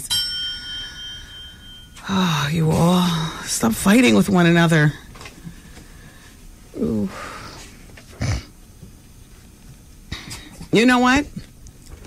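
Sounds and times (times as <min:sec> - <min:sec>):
bell-like chime ringing: 0:00.0 - 0:02.3.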